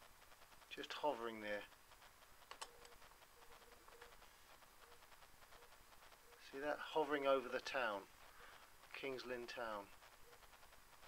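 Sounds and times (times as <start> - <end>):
faint clicks: 1.7 - 6.5.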